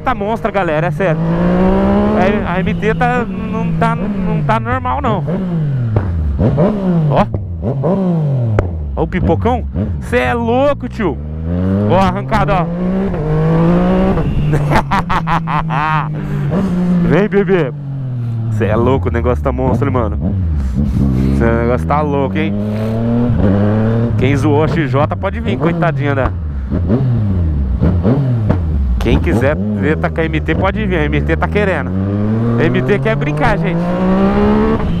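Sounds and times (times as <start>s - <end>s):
motorcycle engine revving: 0.0s - 35.0s.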